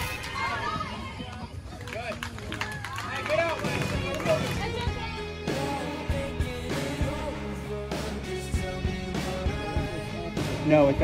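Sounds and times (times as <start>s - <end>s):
background music: 3.1s - 11.0s.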